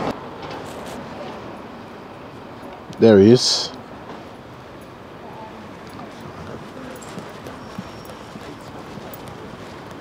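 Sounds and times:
street background noise: 0.0s - 10.0s
faint footsteps on pavement: 3.8s - 10.0s.

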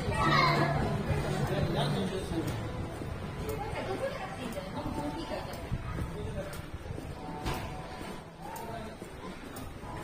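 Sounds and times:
low background music: 0.0s - 10.0s.

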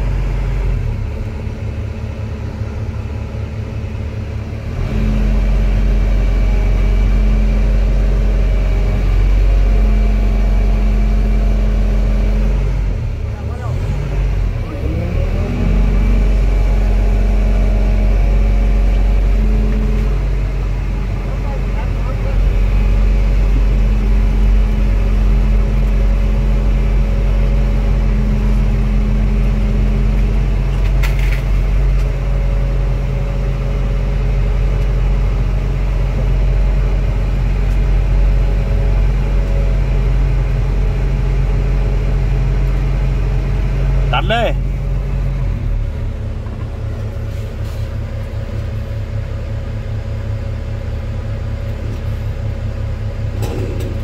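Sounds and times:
excavator diesel engine: 0.0s - 54.0s.

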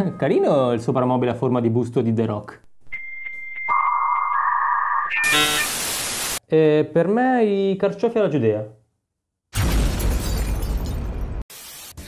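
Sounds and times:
thin high beep: 2.9s - 5.8s.

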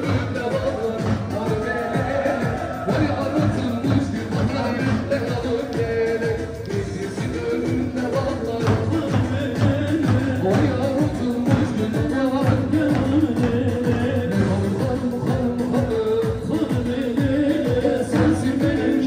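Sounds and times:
held melody: 0.0s - 9.1s
man singing into a microphone: 0.0s - 19.0s
steady drum beat: 0.0s - 19.0s.

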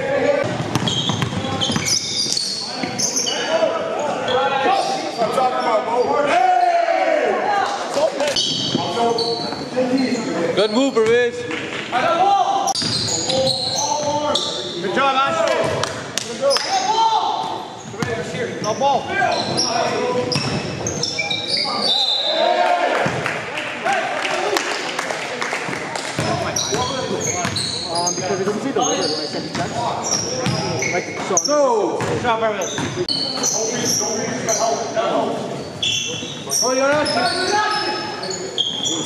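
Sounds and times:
basketball bouncing: 0.4s - 1.9s, 30.4s - 30.7s
sneakers squeaking on court: 0.4s - 4.4s, 8.3s - 11.8s, 12.7s - 14.8s, 16.5s - 22.2s, 26.2s - 39.0s.

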